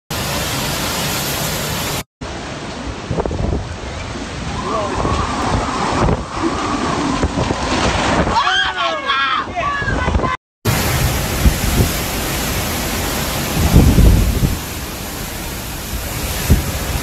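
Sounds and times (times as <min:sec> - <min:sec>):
wind and rain buffeting microphone: 0:00.1 - 0:17.0.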